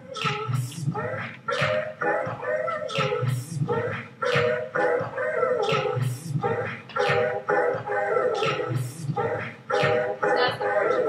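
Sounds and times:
looped pitched voice sounds: 0.0 - 1.4, 2.0 - 4.1, 4.8 - 6.8, 10.2 - 11.0.

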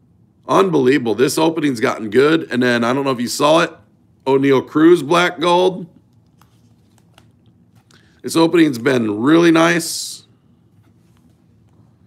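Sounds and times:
faint card handling clicks: 6.0 - 8.1.

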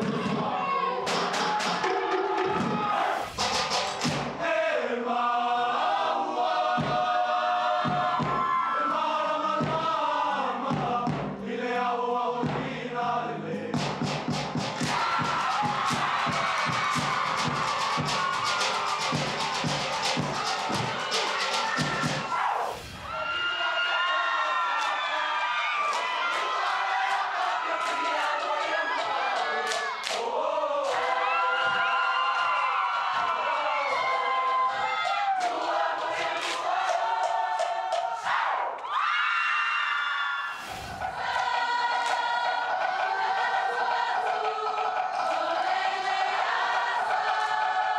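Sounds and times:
crowd cheering: 0.0 - 10.1, 14.5 - 47.9
group singing in unison: 0.0 - 23.1, 25.0 - 38.8, 40.5 - 47.9
sharp percussive strokes: 1.1 - 4.4, 13.9 - 22.9.

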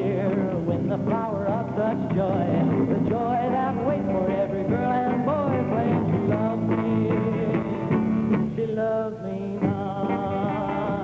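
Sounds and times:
drums: 0.0 - 11.0
electric guitar: 0.0 - 11.0
man singing: 0.0 - 11.0.

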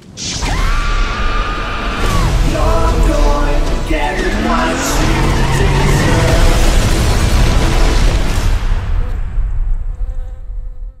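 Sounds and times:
bee buzzing: 9.8 - 11.0.

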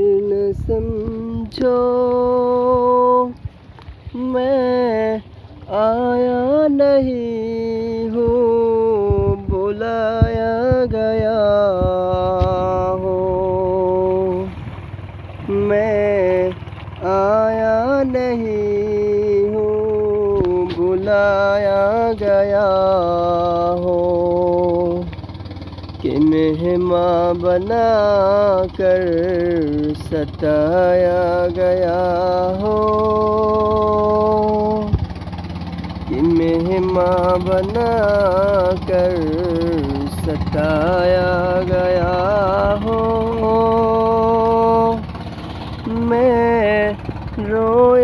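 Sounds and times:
man singing: 0.0 - 3.4, 4.1 - 14.6, 15.4 - 25.1, 26.0 - 35.0, 36.0 - 48.0
low pulsing accompaniment: 0.0 - 48.0
low rumbling noise: 0.0 - 48.0.

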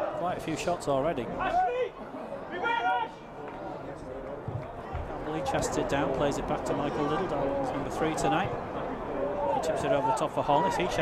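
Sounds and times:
crowd background noise: 0.0 - 11.0.

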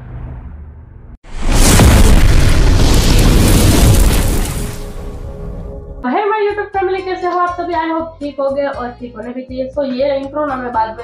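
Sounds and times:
deep cinematic boom: 0.4 - 6.0
music: 5.2 - 11.0.

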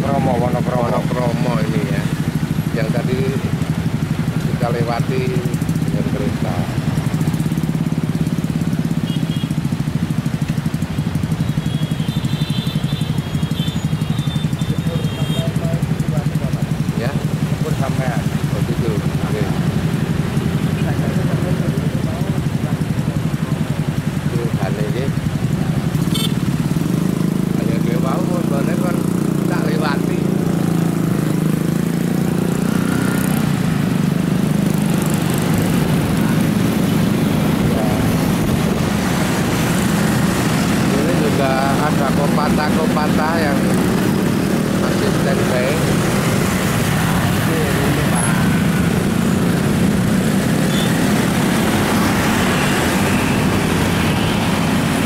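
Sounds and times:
small motorcycle engines running: 0.0 - 55.0.

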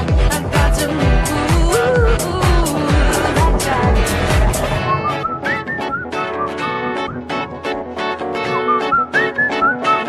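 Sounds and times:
plucked guitar: 0.0 - 10.0
pop music with bass drum: 0.0 - 10.0
whistled melody: 4.8 - 7.5, 8.4 - 10.0.

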